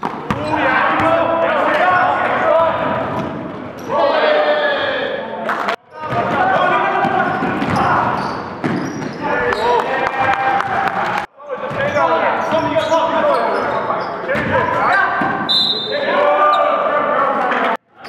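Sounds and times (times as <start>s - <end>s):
basketball bouncing on court floor: 0.0s - 1.2s, 6.0s - 9.2s
players' voices echoing: 0.0s - 18.0s.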